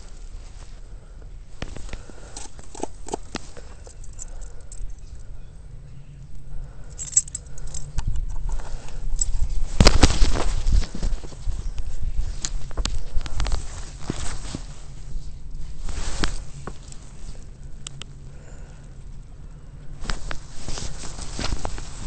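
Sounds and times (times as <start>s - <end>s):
handling knocks and rustles: 1.5s - 5.1s, 7.0s - 17.5s, 20.0s - 22.0s.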